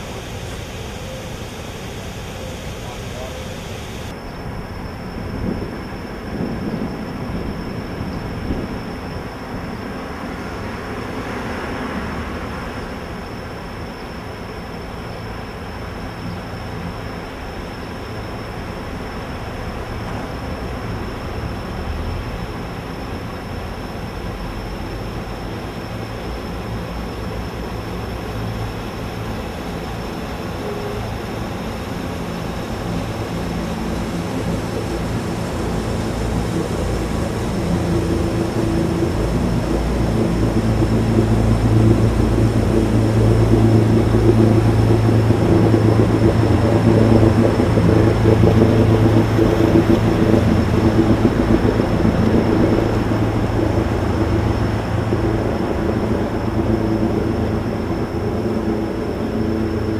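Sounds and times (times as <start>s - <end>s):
engine drone: 0.0s - 4.2s, 6.3s - 59.9s.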